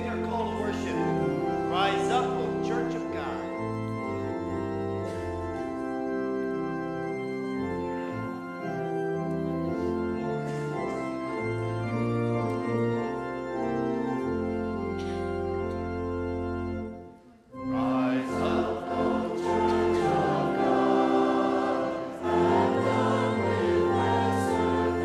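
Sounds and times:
organ playing sustained chords: 0:00.0 - 0:25.0.

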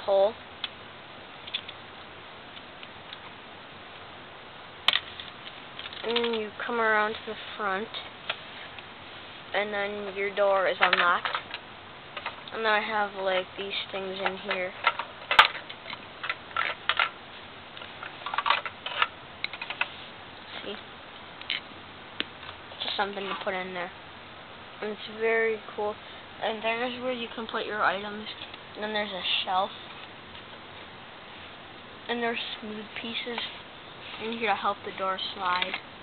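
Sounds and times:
steady hiss: 0:00.0 - 0:36.0
plastic pieces clicking and clattering: 0:04.9 - 0:06.4, 0:10.8 - 0:11.6, 0:14.2 - 0:17.1, 0:18.2 - 0:19.9.

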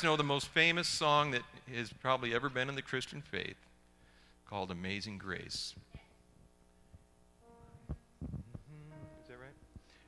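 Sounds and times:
faint steady hum: 0:00.0 - 0:10.0
soft sustained musical note: 0:07.4 - 0:09.7.

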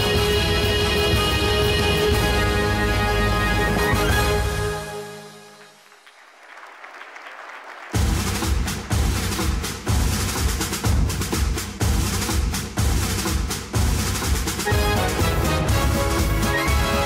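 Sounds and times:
heavy bass drum beats: 0:08.0 - 0:17.0.

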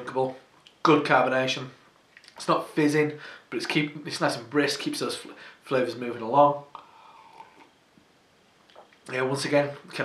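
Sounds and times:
soft breath: 0:03.2 - 0:03.5, 0:06.8 - 0:07.7
faint vocal hum: 0:06.7 - 0:07.7.

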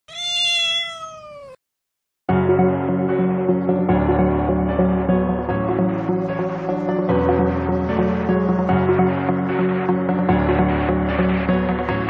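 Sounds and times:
cat meow: 0:00.1 - 0:01.6.

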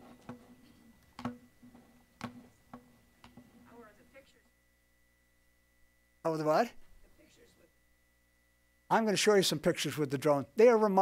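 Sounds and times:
faint clicks and taps: 0:00.1 - 0:03.7.

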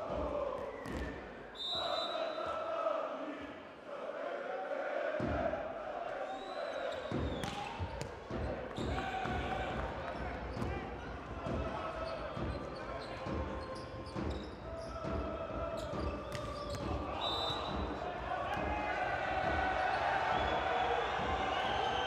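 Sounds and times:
voices and shouts echoing: 0:00.0 - 0:22.0
volleyball struck with sharp smacks: 0:07.2 - 0:08.3.

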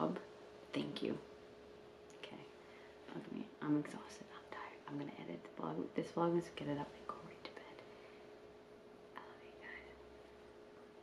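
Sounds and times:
thin steady hum: 0:00.0 - 0:11.0
breathy whisper-like sounds: 0:09.2 - 0:10.0.

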